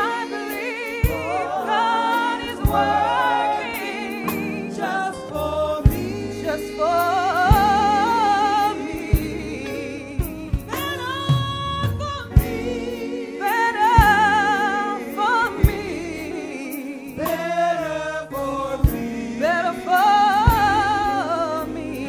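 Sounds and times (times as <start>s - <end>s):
backing vocal harmonies: 0.0s - 22.0s
woman singing gospel lead: 0.0s - 22.0s.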